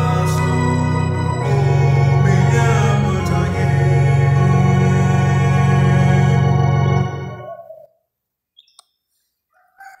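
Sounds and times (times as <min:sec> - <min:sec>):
distant bird calls: 0:07.3 - 0:10.0.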